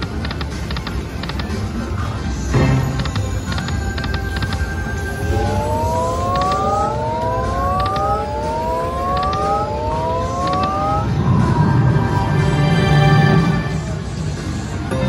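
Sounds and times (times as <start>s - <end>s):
casino background noise: 0.0s - 11.6s
short win tune: 2.6s - 11.8s
rising electronic tones: 2.6s - 13.7s.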